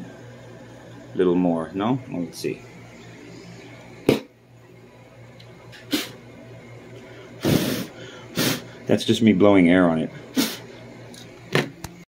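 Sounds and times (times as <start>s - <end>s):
person blowing puffs of air: 5.8s - 6.2s, 7.1s - 8.8s, 10.3s - 10.7s.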